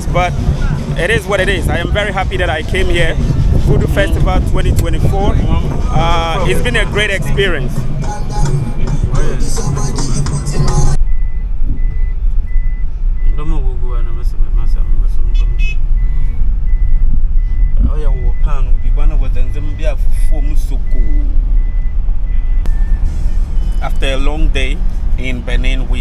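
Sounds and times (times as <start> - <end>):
indistinct voices: 0.0 - 11.0
engine and road rumble: 0.0 - 26.0
high electronic warning beep: 15.2 - 24.3.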